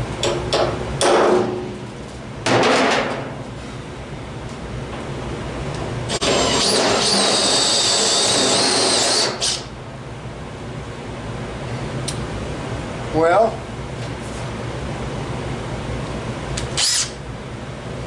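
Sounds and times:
hammer striking punch on metal: 0.2 - 1.7
cordless drill whining: 6.1 - 9.6, 16.8 - 17.1.

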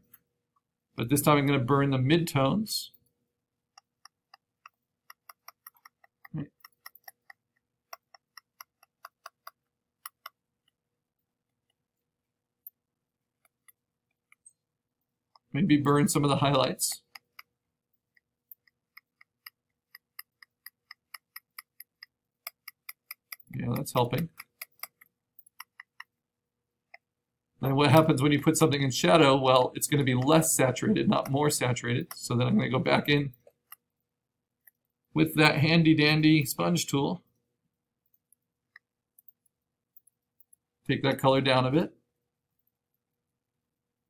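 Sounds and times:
computer mouse clicks: 3.8 - 10.8.

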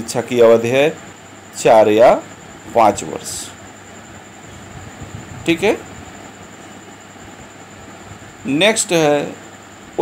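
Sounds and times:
faint high-pitched whine: 0.0 - 10.0
low hum: 0.0 - 10.0
steady background hiss: 0.0 - 10.0.

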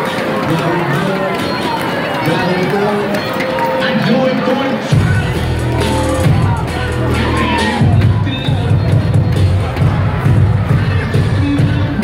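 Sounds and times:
crowd talking and calling out: 0.0 - 12.0
loud music: 0.0 - 12.0.

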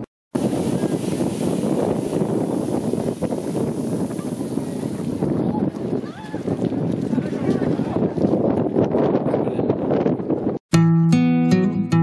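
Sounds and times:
wind buffeting microphone: 0.0 - 10.6
water rushing and splashing: 0.4 - 7.8.

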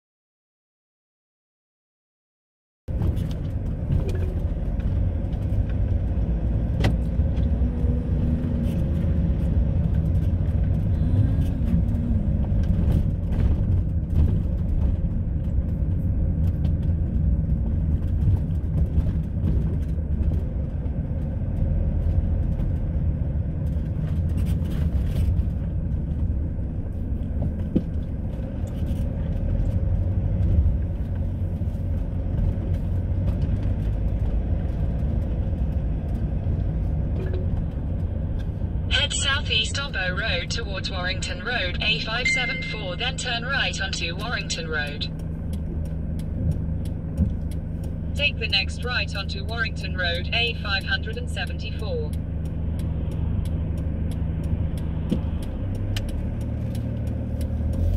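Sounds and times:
car engine and tyre noise: 2.9 - 57.9.

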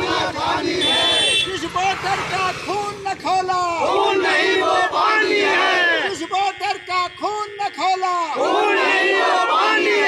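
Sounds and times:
crowd shouting in unison: 0.0 - 1.3, 3.8 - 6.2, 8.3 - 10.0.

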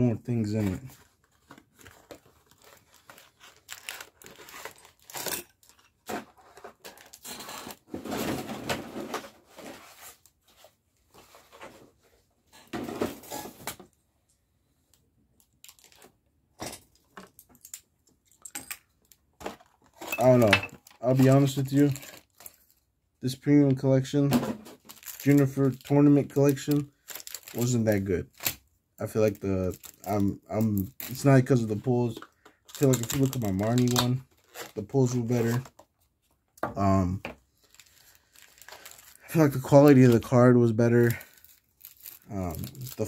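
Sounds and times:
packaging crinkling and tearing: 0.5 - 8.2, 15.4 - 16.1, 19.1 - 22.8, 24.7 - 28.6, 29.2 - 35.7, 37.5 - 43.0.

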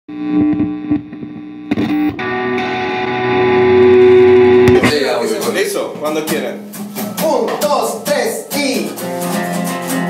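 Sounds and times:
electric guitar notes and chord: 0.1 - 5.2, 8.4 - 10.0.

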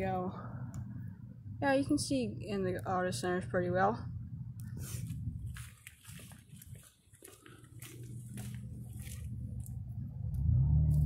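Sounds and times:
low steady hum: 0.0 - 11.0
footsteps: 4.7 - 9.8.

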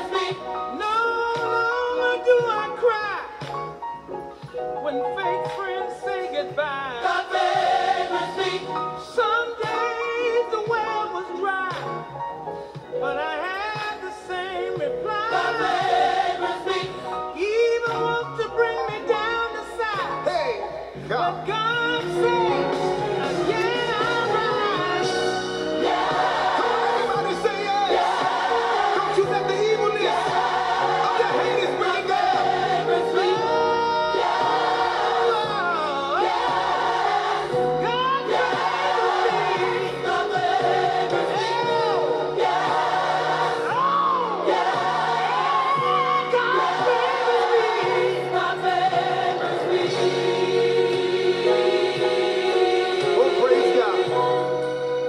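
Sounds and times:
choir singing gospel: 0.0 - 55.0
instrumental accompaniment: 0.0 - 55.0.

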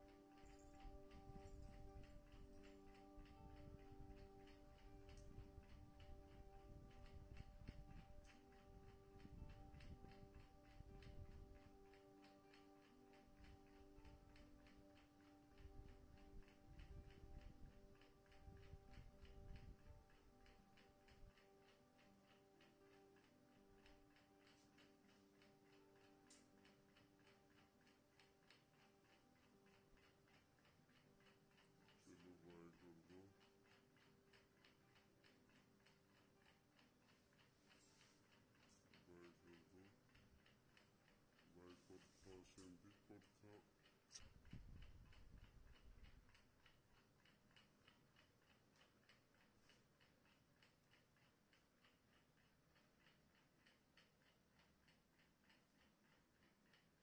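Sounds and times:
faint even ticking: 0.0 - 57.0.

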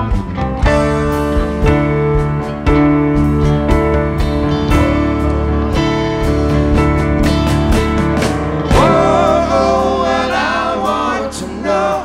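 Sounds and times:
electric guitar and bass chords: 0.0 - 12.0
voices singing in harmony: 8.7 - 12.0.

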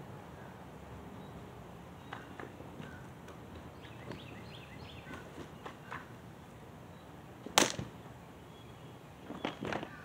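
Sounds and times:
sharp loud crack of fabric: 7.6 - 7.9.

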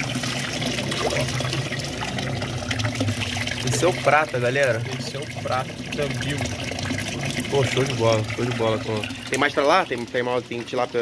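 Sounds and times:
water bubbling in fish tank: 0.0 - 11.0.

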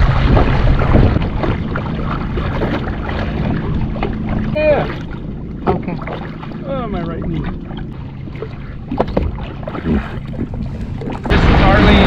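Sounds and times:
jet ski engine running: 0.0 - 12.0.

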